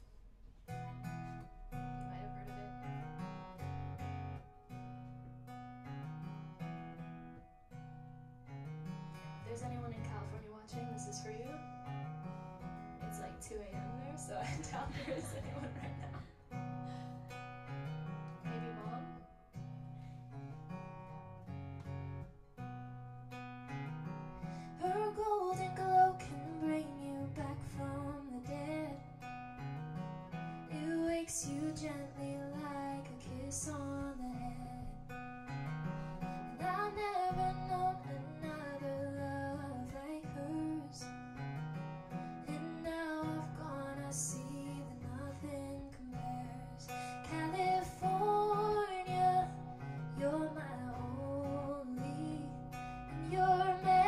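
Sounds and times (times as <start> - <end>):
strummed acoustic guitar: 0.0 - 54.0
woman singing: 9.4 - 11.6, 13.1 - 16.3, 18.4 - 19.2, 24.7 - 29.1, 30.7 - 35.1, 36.4 - 41.1, 42.4 - 54.0.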